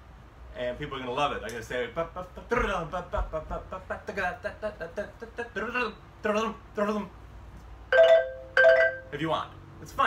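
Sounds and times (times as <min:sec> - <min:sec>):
xylophone note: 0:07.9 - 0:09.2.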